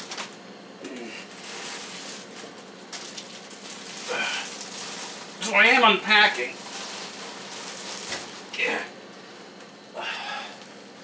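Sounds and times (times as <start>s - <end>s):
plastic bags rustling and crinkling: 0.0s - 8.8s.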